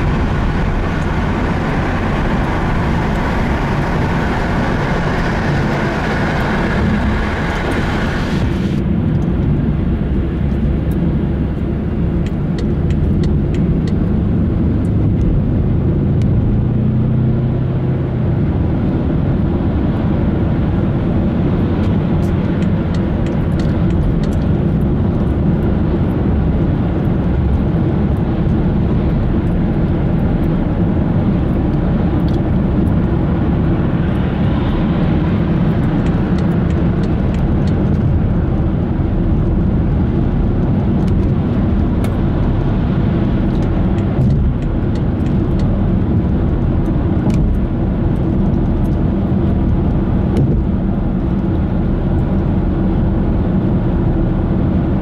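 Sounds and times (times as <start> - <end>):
car road noise from inside: 0.0 - 55.0.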